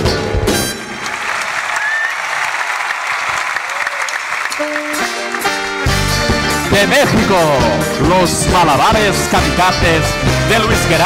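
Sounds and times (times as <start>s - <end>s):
circus band playing: 0.0s - 11.0s
audience applause: 0.6s - 7.2s.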